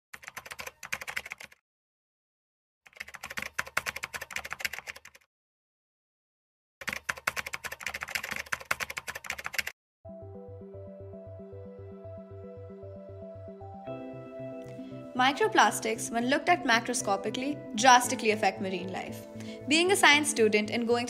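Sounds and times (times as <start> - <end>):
rapid keyboard typing: 0.1 - 1.6, 2.9 - 5.3, 6.8 - 9.8.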